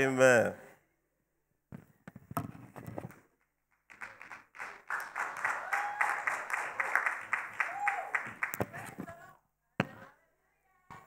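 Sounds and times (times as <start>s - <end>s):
congregation clapping: 3.8s - 8.9s.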